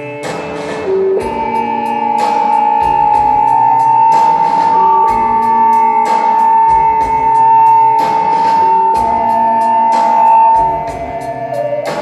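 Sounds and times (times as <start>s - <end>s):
keyboard notes: 0.0s - 12.0s
ticking cymbal beat: 0.0s - 12.0s.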